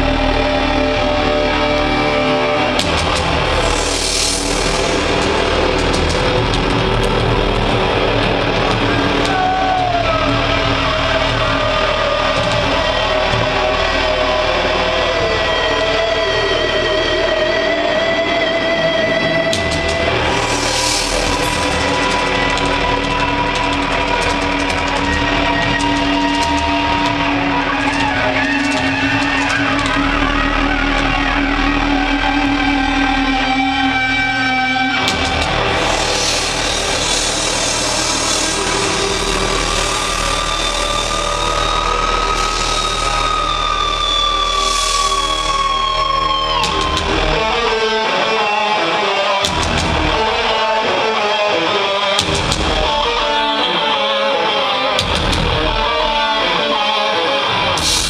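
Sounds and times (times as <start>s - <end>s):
droning amplified electric guitars: 0.0s - 58.0s.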